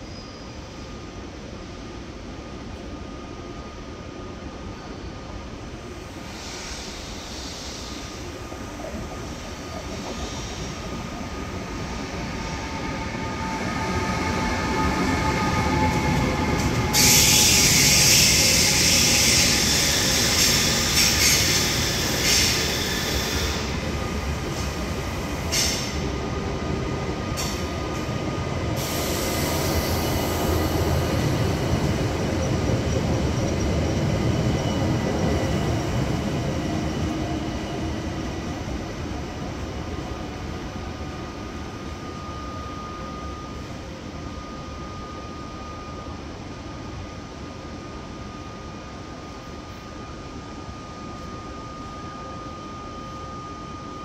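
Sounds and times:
train wheels rolling on rails: 5.8s - 45.1s.

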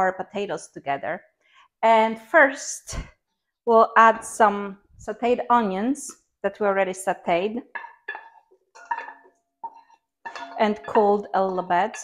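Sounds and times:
utensil clinking against bowl: 7.8s - 12.0s.

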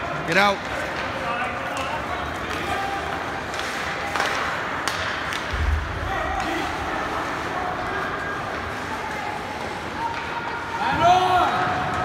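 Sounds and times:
echoing arena noise: 0.0s - 12.0s
skates scraping ice: 0.4s - 5.7s.

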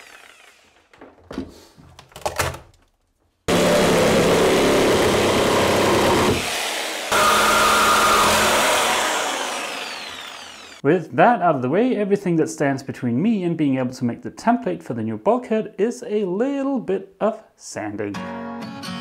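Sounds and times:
reciprocating saw cutting plywood: 0.0s - 0.9s, 3.5s - 10.8s.

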